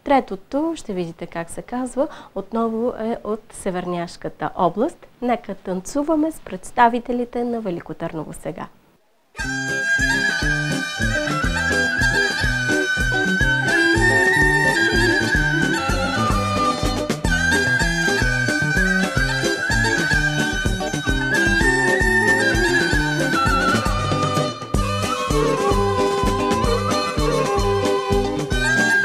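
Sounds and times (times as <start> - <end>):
high held lead melody: 9.4 - 29.0
pulsing bass beat: 10.0 - 28.8.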